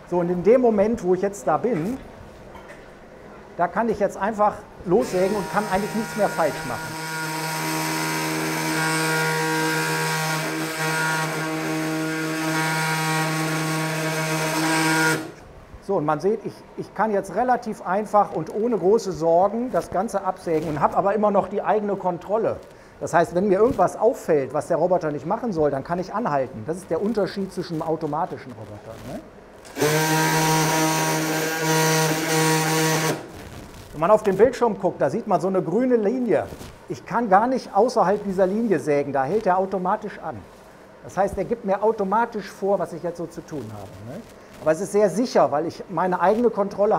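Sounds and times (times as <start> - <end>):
oscillating bone saw running: 5.0 - 15.3, 29.7 - 33.3.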